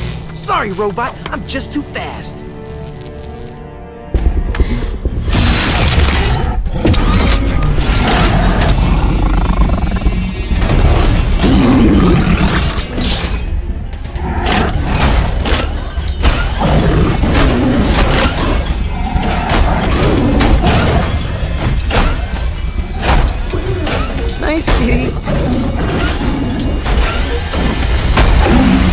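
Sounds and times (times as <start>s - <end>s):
dramatic orchestral music: 0.0s - 28.9s.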